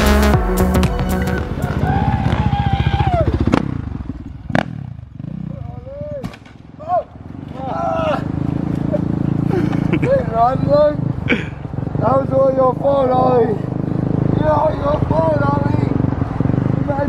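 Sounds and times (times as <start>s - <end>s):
dirt bike engine: 0.0s - 17.0s
voices calling out: 5.7s - 15.2s.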